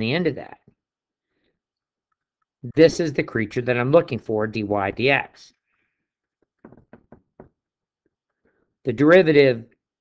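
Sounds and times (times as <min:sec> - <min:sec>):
stylus tapping on tablet: 0:06.5 - 0:07.7.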